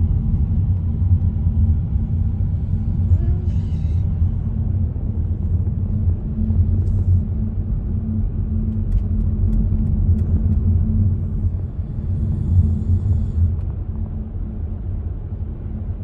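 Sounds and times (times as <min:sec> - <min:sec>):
car interior road noise: 0:00.0 - 0:16.0.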